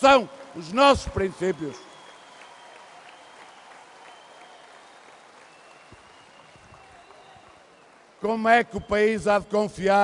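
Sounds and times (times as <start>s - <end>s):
faint audience applause: 0.0s - 9.1s.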